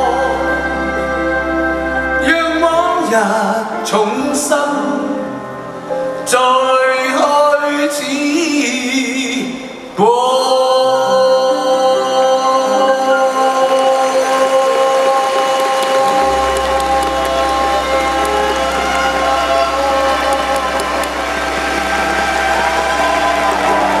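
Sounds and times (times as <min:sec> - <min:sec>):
string orchestra sustained chords: 0:00.0 - 0:06.1, 0:11.6 - 0:24.0.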